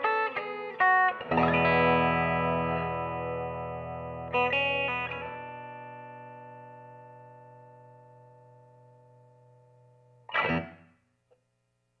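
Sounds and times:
electric guitar chord ringing: 0:00.0 - 0:11.0
guitar string noise burst: 0:10.3 - 0:10.9.

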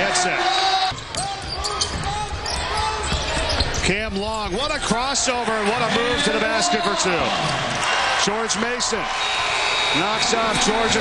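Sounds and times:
basketball bouncing on court: 0:00.9 - 0:04.9.

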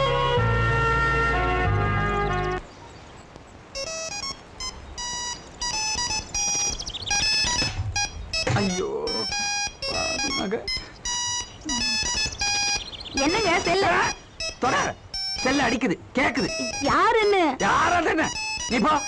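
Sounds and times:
electronic beeping: 0:03.8 - 0:19.0.

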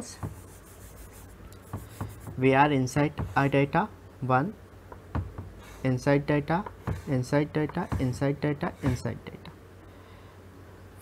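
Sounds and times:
palm rubbing chalkboard: 0:00.0 - 0:03.7, 0:05.1 - 0:09.2.

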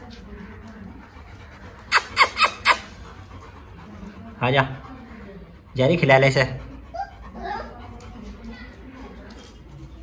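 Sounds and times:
puppy whimpering: 0:01.8 - 0:03.1.

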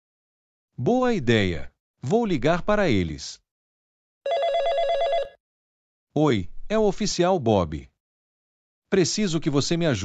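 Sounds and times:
telephone warbling ring: 0:04.2 - 0:05.4.

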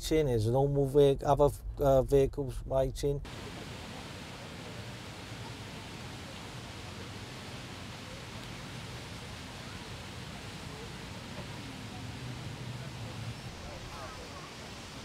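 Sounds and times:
even hiss: 0:01.0 - 0:15.0.

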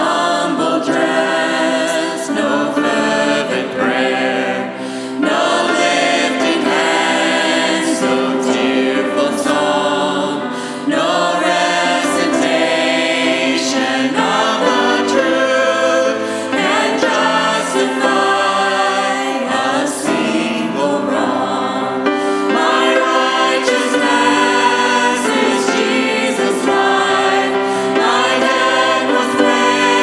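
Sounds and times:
congregation singing a worship song: 0:00.0 - 0:30.0
grand piano: 0:00.0 - 0:30.0.

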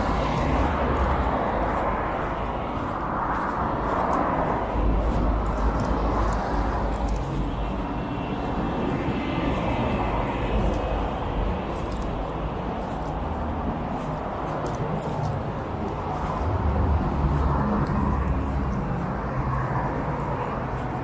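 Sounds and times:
road traffic rumble: 0:00.0 - 0:21.0
vehicle passing: 0:00.0 - 0:21.0.

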